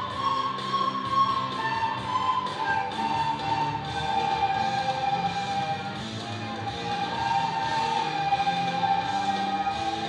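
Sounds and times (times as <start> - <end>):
children playing recorders: 0.0 - 10.0.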